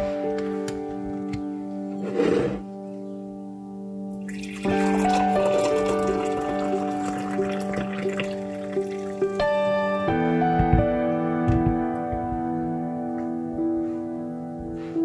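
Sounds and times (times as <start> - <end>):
gentle keyboard music: 0.0 - 15.0
tea pouring into a mug: 4.2 - 9.4.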